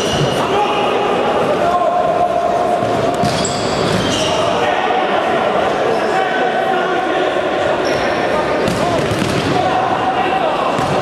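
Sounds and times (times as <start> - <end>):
sports hall din: 0.0 - 11.0.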